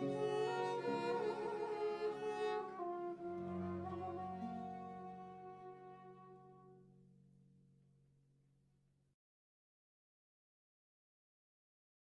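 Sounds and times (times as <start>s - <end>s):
bowed viol: 0.0s - 6.8s
flute: 0.0s - 6.8s
lute: 0.0s - 7.0s.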